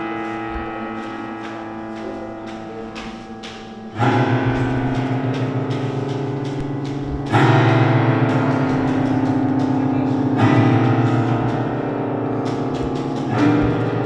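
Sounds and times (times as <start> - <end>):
piano strings struck with mallet: 0.0 - 14.0.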